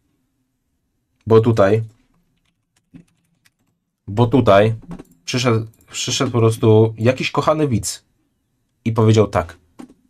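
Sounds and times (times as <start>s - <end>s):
computer keyboard typing: 1.9s - 4.0s, 4.8s - 6.6s.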